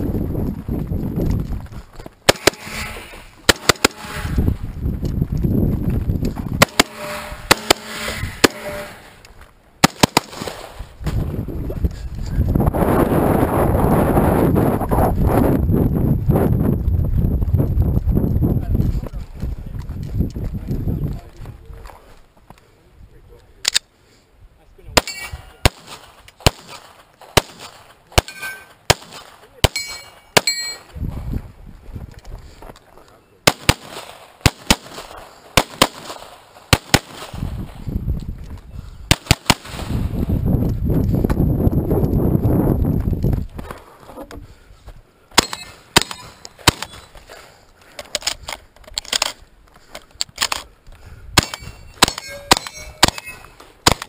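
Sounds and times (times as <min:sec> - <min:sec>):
gunshots: 0:02.2 - 0:04.4, 0:06.6 - 0:09.2, 0:09.8 - 0:10.8, 0:25.0 - 0:30.9, 0:33.4 - 0:37.6, 0:39.1 - 0:40.2, 0:45.3 - 0:47.1, 0:51.4 - 0:54.0
shotgun shots: 0:02.3 - 0:04.4, 0:06.6 - 0:09.1, 0:09.8 - 0:10.8, 0:25.0 - 0:30.8, 0:33.4 - 0:37.5, 0:39.1 - 0:40.2, 0:45.4 - 0:47.1, 0:51.4 - 0:54.0
metallic ring of steel targets: 0:25.0 - 0:25.6, 0:28.2 - 0:28.8, 0:29.7 - 0:30.9, 0:45.4 - 0:47.1, 0:51.4 - 0:53.6.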